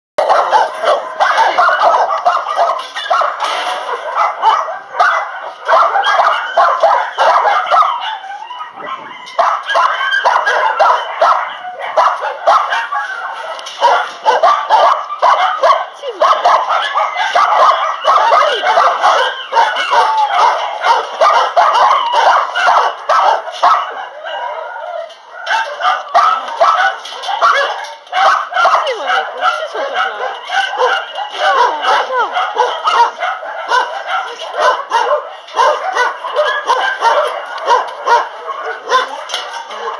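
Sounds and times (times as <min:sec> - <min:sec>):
many dogs barking and yipping: 0:00.2 - 0:39.9.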